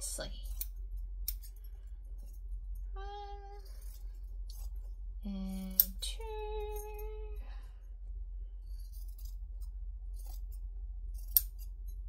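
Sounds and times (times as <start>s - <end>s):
low steady hum: 0.0s - 12.0s
woman saying a word: 5.3s - 7.4s.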